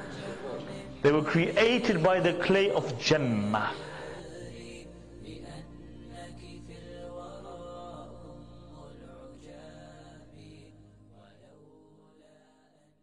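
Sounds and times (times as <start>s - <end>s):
steady low drone: 0.0s - 11.6s
background music: 0.0s - 13.0s
chant-like voice: 0.0s - 13.0s.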